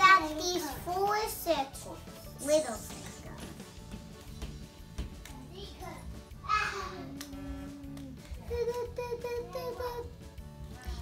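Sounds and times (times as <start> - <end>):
background music: 0.0 - 11.0
child humming and singing: 6.6 - 10.1.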